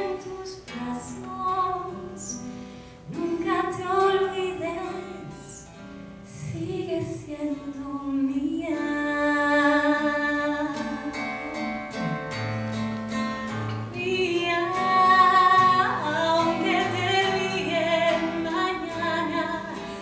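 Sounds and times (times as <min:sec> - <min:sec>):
woman singing slow song: 0:00.0 - 0:02.5, 0:03.1 - 0:12.3, 0:13.7 - 0:20.0
strummed acoustic guitar: 0:00.0 - 0:20.0.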